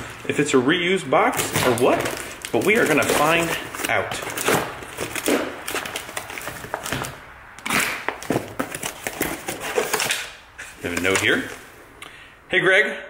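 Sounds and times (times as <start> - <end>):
cardboard box being torn open: 1.3 - 10.4
paper crinkling: 1.4 - 7.2, 7.9 - 11.7.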